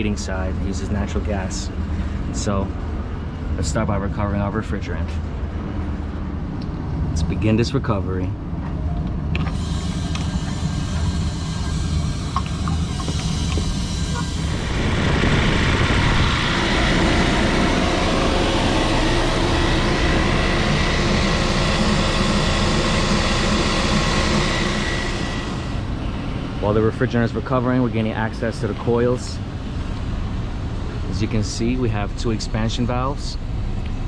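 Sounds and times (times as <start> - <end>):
low rumble: 8.4 - 28.3
recovery machine running: 9.2 - 31.3.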